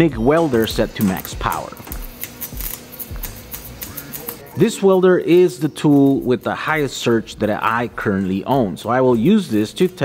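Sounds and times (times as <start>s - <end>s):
welding arc crackling: 0.0s - 10.0s.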